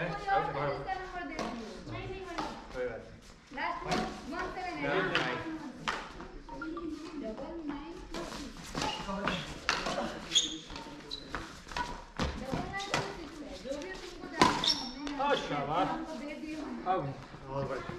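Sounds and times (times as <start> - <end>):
people talking: 3.9 - 15.2
footwork on court: 6.9 - 15.3
rackets hitting shuttlecock: 8.8 - 10.9, 14.4 - 15.2.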